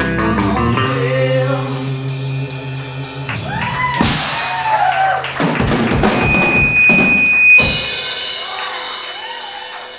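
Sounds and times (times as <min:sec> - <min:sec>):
surf rock band playing live: 0:00.0 - 0:04.6, 0:05.4 - 0:09.6
drum kit hits: 0:03.4 - 0:04.8, 0:05.4 - 0:09.3.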